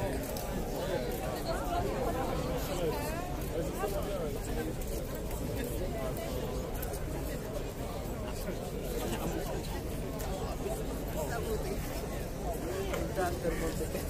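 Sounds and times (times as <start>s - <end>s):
crowd chatter: 0.0s - 14.0s.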